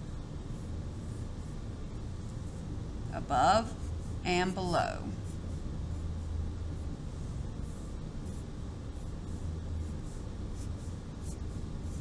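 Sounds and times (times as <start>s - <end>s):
marker scratching on paper: 0.0s - 12.0s
steady low hum: 0.0s - 12.0s.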